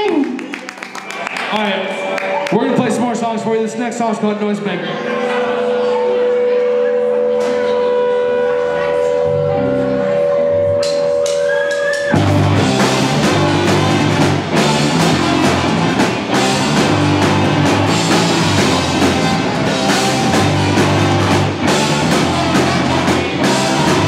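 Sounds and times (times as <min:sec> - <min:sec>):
guitars: 0:05.4 - 0:24.0
steady held tone: 0:05.5 - 0:16.0
low bass notes: 0:05.8 - 0:11.4, 0:12.1 - 0:24.0
drums: 0:10.8 - 0:24.0
horn section: 0:12.2 - 0:24.0.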